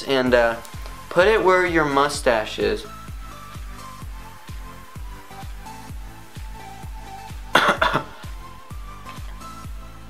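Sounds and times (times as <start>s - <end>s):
electronic music with kick drum: 0.0s - 10.0s
man coughing: 7.5s - 8.3s.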